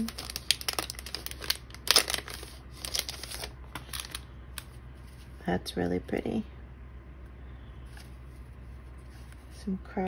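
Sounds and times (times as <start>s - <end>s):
cellophane crinkling: 0.0s - 5.2s.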